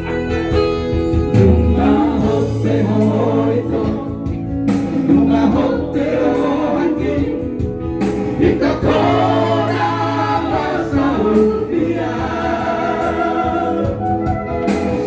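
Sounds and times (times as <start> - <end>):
men singing into microphones: 1.3 - 14.4.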